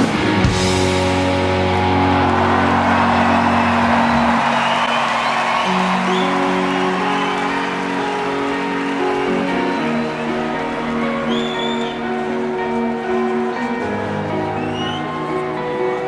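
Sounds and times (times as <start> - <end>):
crowd noise: 0.0 - 16.0
electric guitars ringing notes: 0.0 - 16.0.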